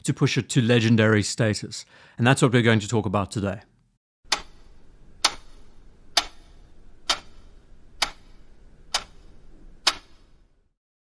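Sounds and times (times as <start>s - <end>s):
clock ticking: 4.3s - 4.6s, 5.2s - 10.2s.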